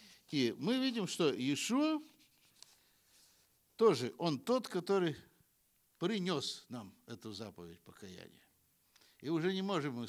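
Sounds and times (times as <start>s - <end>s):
man speaking: 0.3s - 2.2s, 3.8s - 5.4s, 6.0s - 8.6s, 9.2s - 10.0s.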